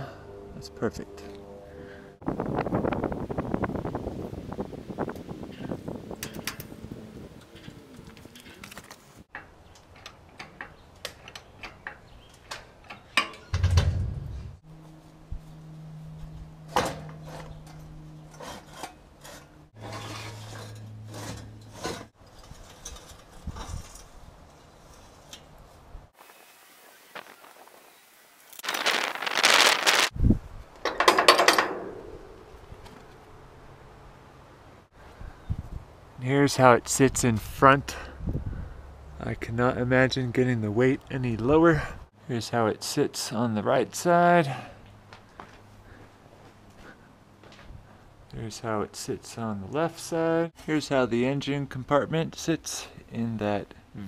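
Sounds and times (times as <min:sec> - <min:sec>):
metal rubbing: 0:13.0 - 0:25.7.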